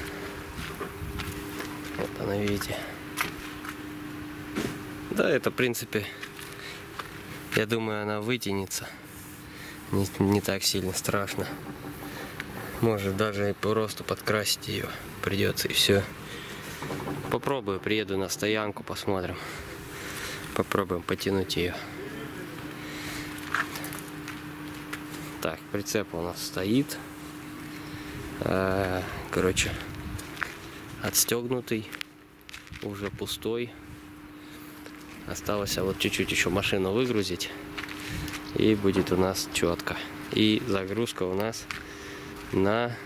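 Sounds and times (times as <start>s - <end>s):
footsteps on asphalt: 0.0s - 3.8s, 29.8s - 31.0s, 31.8s - 33.2s, 37.0s - 38.5s, 41.6s - 42.6s
steady hum: 0.0s - 43.0s.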